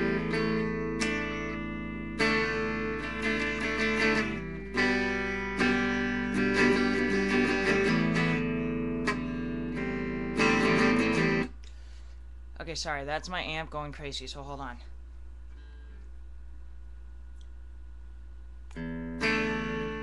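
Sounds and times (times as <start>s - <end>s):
amplified guitar strumming chords: 0.0s - 11.6s, 18.6s - 20.0s
low amp hum: 0.0s - 20.0s.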